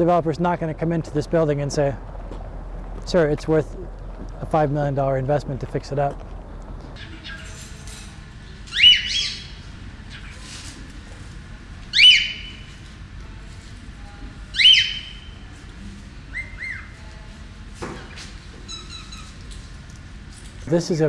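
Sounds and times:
parrot squawking: 8.7 - 10.4, 11.9 - 12.6, 14.6 - 15.3, 18.7 - 19.4.

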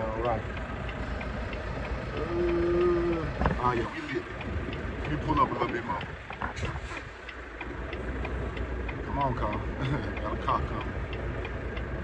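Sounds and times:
diesel truck engine rumble: 0.0 - 12.0.

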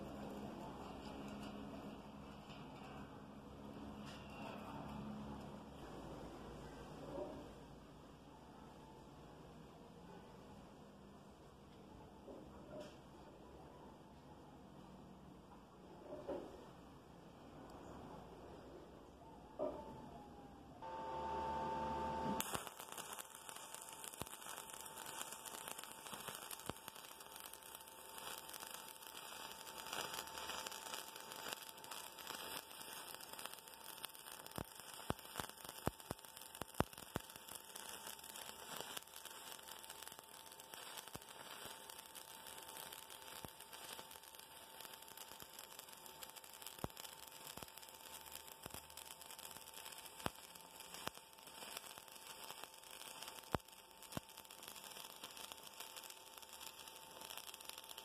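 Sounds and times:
welding arc crackling and popping: 0.0 - 5.7, 20.8 - 58.0.

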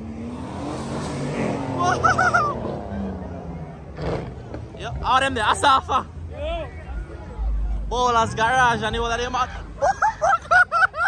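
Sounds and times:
car engine revving past: 0.0 - 5.2.

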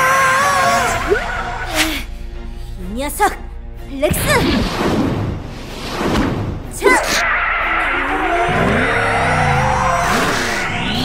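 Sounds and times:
background music: 0.0 - 11.0
cartoon engine revving: 7.1 - 11.0
rising whoosh: 7.2 - 11.0.

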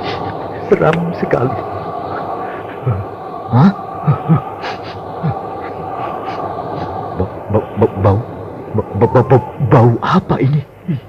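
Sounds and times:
eerie wind drone: 0.0 - 11.0.

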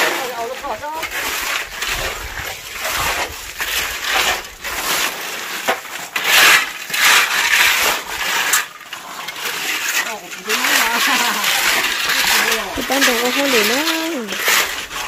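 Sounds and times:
shovels scraping wet concrete: 0.0 - 15.0.

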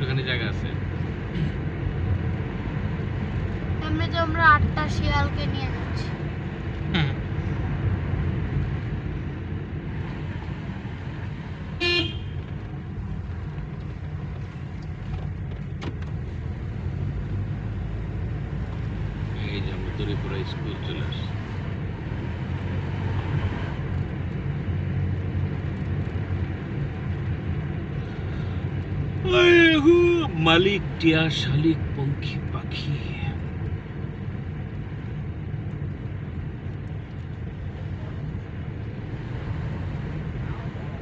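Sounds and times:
car engine and road noise: 0.0 - 41.0
car horn toot: 11.8 - 12.5.

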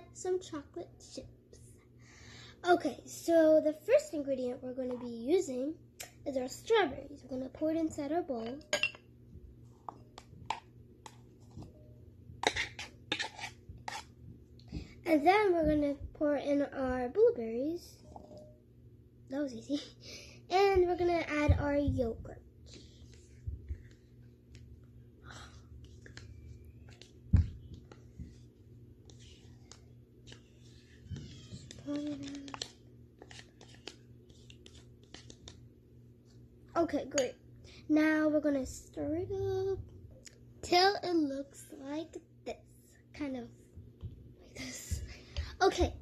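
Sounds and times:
plastic spoon scraping and tapping: 12.4 - 14.1.

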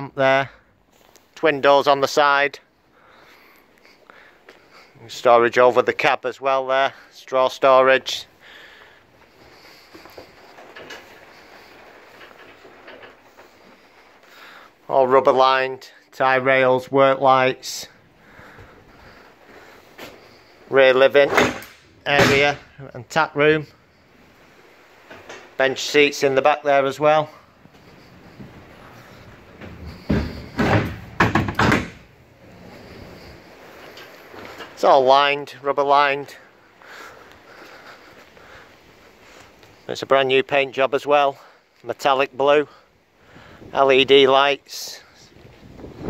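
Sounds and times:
door clunking and rattling open: 21.2 - 22.8, 27.6 - 33.4.

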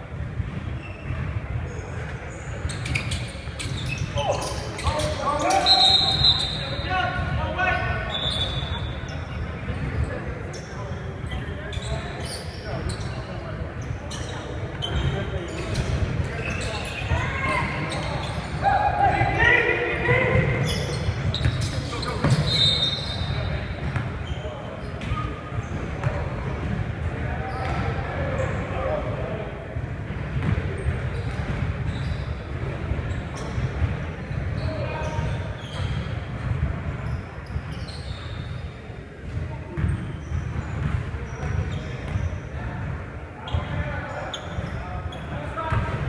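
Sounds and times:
sneakers squeaking: 0.0 - 46.0.

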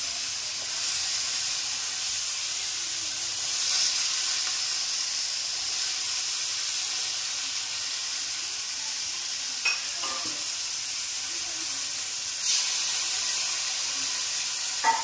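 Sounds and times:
onions sizzling in oil: 0.0 - 15.0.

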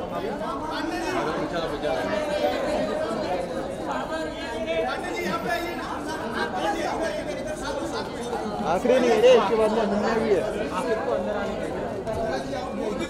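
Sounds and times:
chatter of many voices: 0.0 - 13.0.

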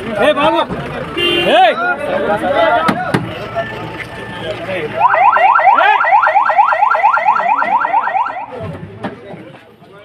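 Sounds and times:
police siren yelping: 5.0 - 8.5.

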